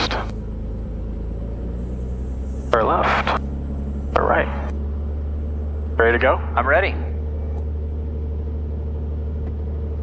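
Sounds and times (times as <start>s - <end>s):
aircraft engine hum from cabin: 0.0s - 10.0s.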